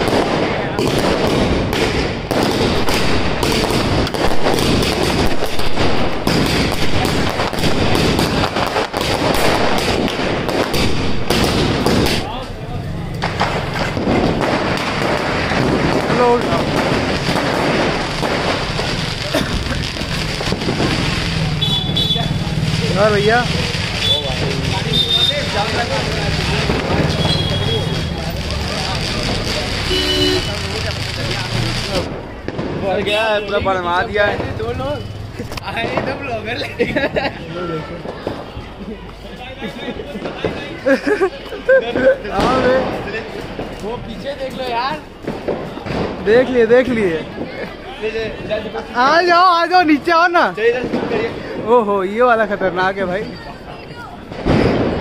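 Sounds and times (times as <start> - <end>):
fireworks banging and crackling: 0.0 - 55.0
vehicle noise: 0.0 - 55.0
short car horn toot: 29.9 - 30.5.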